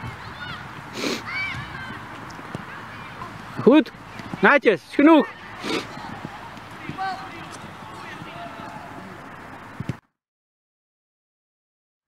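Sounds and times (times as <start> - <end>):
distant shouts of people: 0.0 - 9.8.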